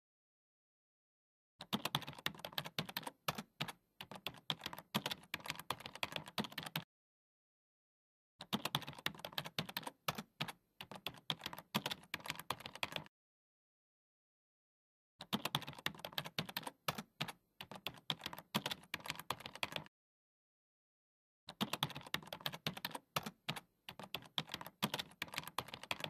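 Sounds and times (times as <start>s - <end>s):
keyboard typing clicks: 1.6s - 6.9s, 8.4s - 13.1s, 15.2s - 19.9s, 21.5s - 26.0s.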